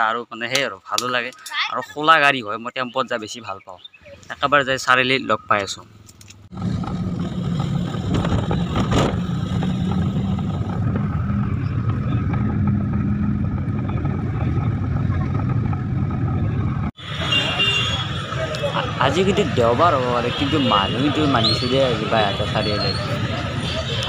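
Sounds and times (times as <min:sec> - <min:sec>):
street noise: 0:00.0 - 0:24.0
vehicle engine and road rumble: 0:05.2 - 0:24.0
voices: 0:10.1 - 0:24.0.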